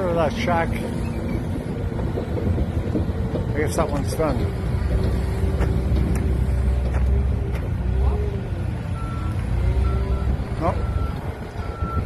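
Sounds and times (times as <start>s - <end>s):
heavy diesel engine rumbling: 0.0s - 12.0s.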